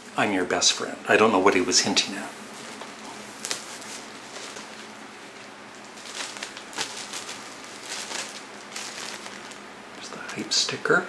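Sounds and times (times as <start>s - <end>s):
faint steady hiss: 0.0s - 11.0s
plastic shrink-wrap crinkling: 2.5s - 10.6s.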